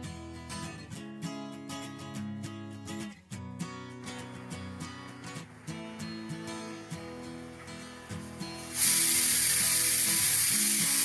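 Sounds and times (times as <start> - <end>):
pressure cooker steam hiss: 7.0 - 11.0.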